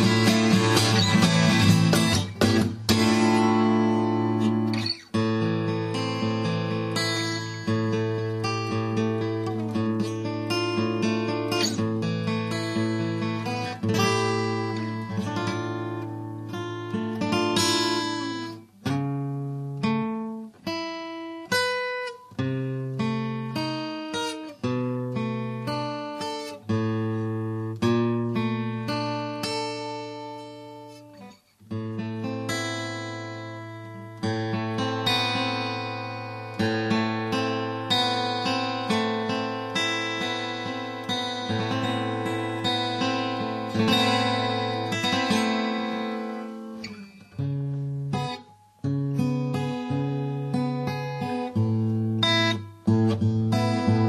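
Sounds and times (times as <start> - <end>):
fingerstyle acoustic guitar: 0.0 - 54.0.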